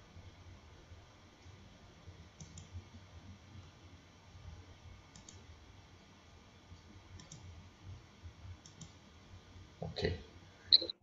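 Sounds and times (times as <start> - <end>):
low steady hum: 0.0 - 11.0
computer mouse clicks: 2.4 - 2.8, 5.1 - 5.4, 7.2 - 7.5, 8.6 - 9.0.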